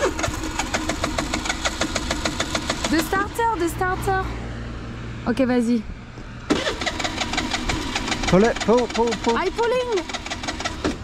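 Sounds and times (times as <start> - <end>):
scooter electric starter cranking engine: 0.0 - 3.4, 6.5 - 11.0.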